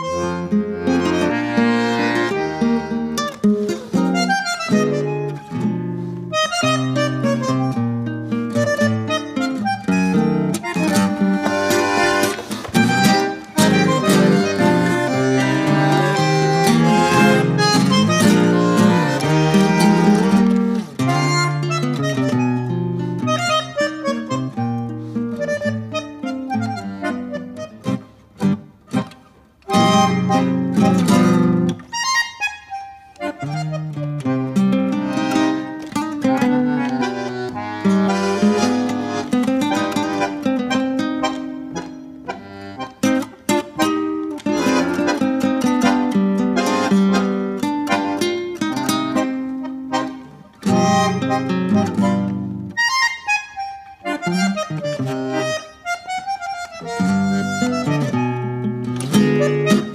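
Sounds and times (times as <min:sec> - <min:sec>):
bandoneon chords and melody: 0:00.0 - 0:59.9
plucked acoustic guitar: 0:00.0 - 0:59.9.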